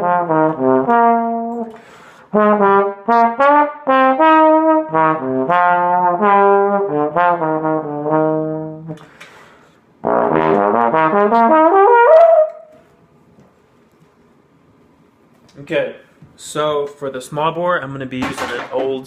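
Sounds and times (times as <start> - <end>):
trombone playing jazz ballad: 0.0 - 9.0, 10.0 - 12.8
breath: 1.7 - 2.3, 9.0 - 9.9.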